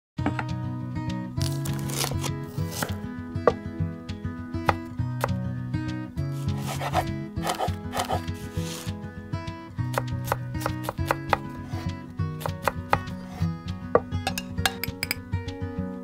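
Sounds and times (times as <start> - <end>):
background music: 0.2 - 16.0
knife chopping on wooden board: 1.6 - 3.6, 4.6 - 5.4, 6.4 - 8.9, 9.9 - 15.2.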